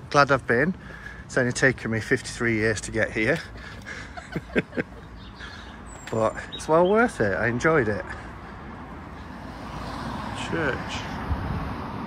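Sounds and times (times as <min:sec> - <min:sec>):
road traffic hiss: 0:00.0 - 0:12.0.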